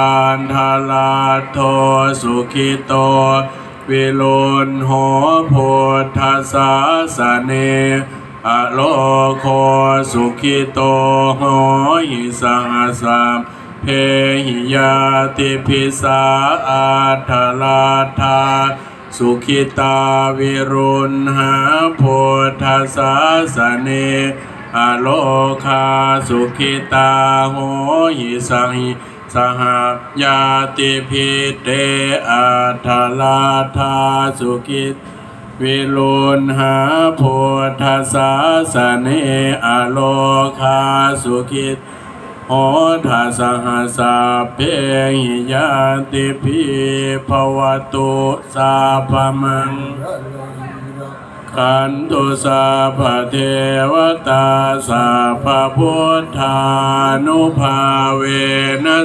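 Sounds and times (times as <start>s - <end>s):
man chanting: 0.0s - 35.0s, 35.6s - 41.8s, 42.4s - 59.0s.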